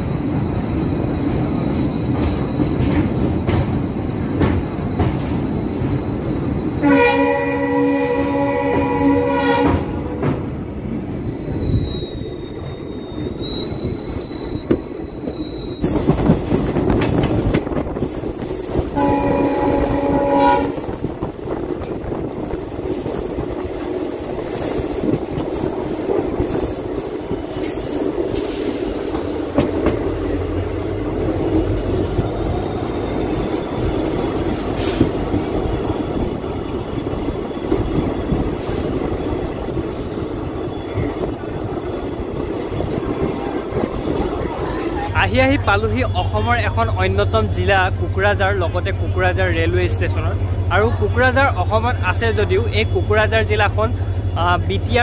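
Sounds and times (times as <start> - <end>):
high wheel squeal: 0.0 - 3.2, 4.0 - 21.1, 24.4 - 55.0
train wheels rumbling and clattering: 0.0 - 55.0
train horn blast: 6.8 - 10.2, 18.9 - 21.0.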